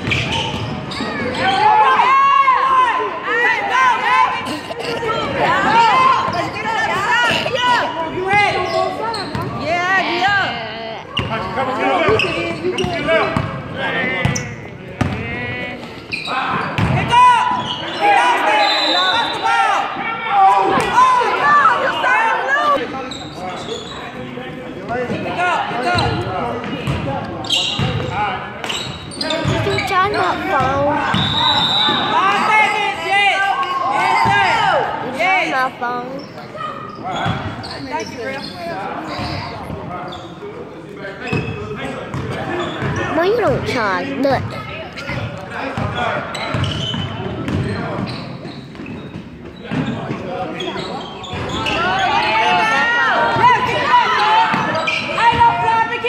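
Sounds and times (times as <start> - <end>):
sneaker squeaks: 0.0 - 1.8, 4.4 - 10.4, 11.1 - 13.6, 14.2 - 20.0, 20.7 - 24.3, 24.9 - 32.8, 35.6 - 55.8
basketball bouncing: 15.0 - 15.4, 46.5 - 48.1.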